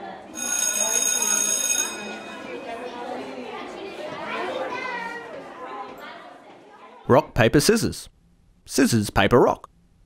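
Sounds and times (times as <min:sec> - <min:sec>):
children talking: 0:00.0 - 0:07.1.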